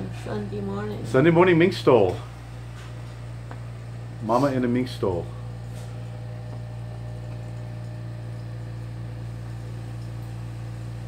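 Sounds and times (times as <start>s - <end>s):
air conditioner humming: 0.0s - 11.0s.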